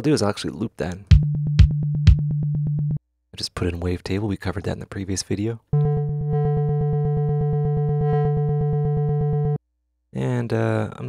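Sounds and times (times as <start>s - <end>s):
synthesizer low pulsing note: 5.8s - 9.6s.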